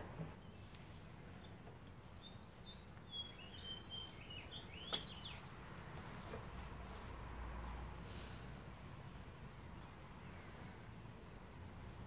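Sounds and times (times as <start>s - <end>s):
small birds chirping: 0.3s - 6.6s
sharp click: 4.9s - 5.2s.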